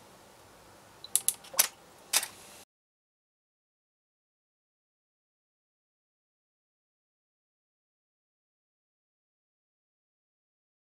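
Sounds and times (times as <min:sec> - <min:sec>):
sharp mechanical clicks: 0:01.1 - 0:02.3.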